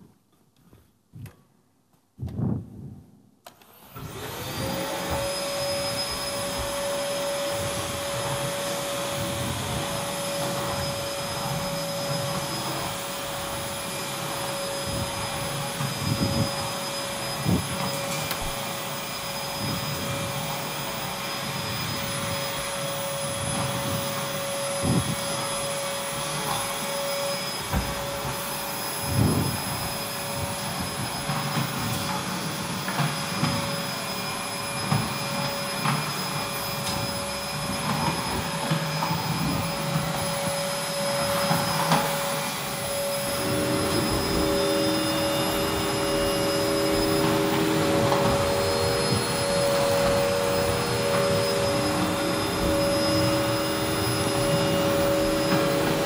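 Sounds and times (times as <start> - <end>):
vacuum cleaner motor whine: 3.5 - 56.0
rushing suction noise: 38.8 - 56.0.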